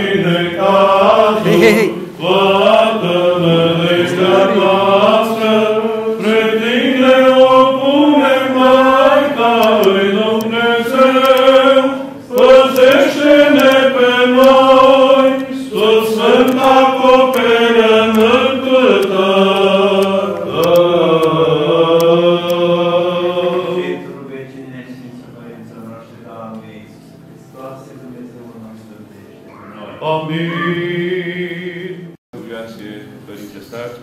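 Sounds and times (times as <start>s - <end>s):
men chanting a church hymn: 0.0s - 34.0s.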